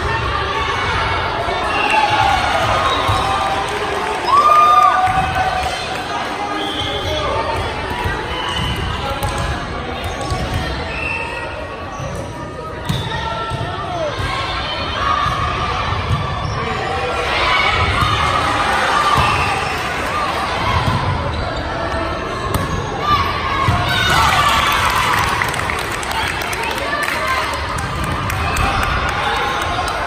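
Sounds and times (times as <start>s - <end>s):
players' voices echoing: 0.0s - 30.0s.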